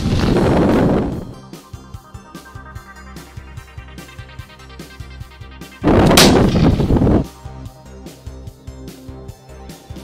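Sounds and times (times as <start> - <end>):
rifle shot rumbling: 6.0 - 7.0.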